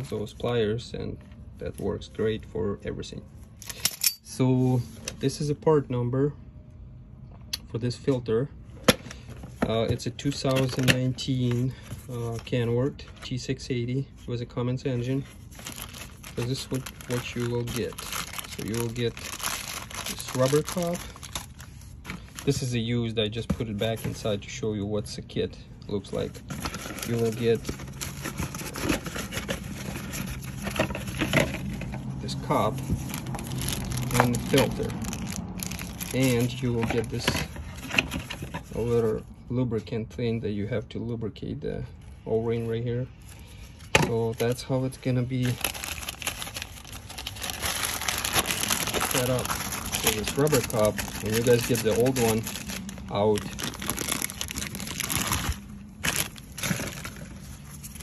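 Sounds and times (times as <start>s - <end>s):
parts clicking and scraping: 3.6s - 4.3s
cardboard and packaging rustling: 8.8s - 13.6s, 14.2s - 24.6s, 25.9s - 39.2s, 42.7s - 58.0s
plastic bag crinkling: 15.0s - 22.8s, 26.1s - 37.3s, 44.1s - 58.0s.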